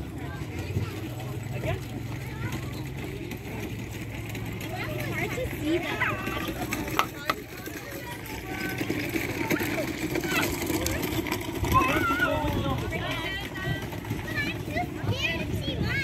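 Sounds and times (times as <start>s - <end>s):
people and children chattering: 0.0s - 16.0s.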